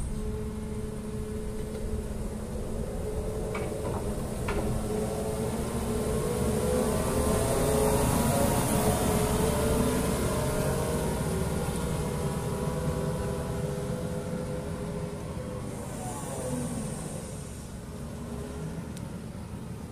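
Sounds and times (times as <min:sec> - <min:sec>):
excavator diesel engine passing: 0:00.0 - 0:19.9.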